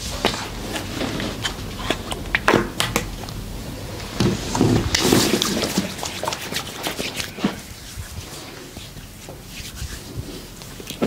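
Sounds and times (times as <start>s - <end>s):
rubbing swish on skin: 4.3s - 11.0s.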